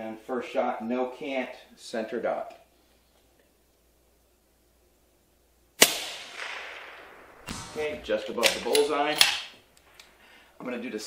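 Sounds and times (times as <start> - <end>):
rifle shot: 5.8 - 10.2.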